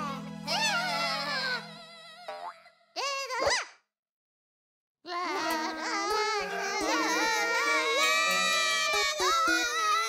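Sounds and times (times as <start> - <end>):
music bed: 5.2 - 10.0.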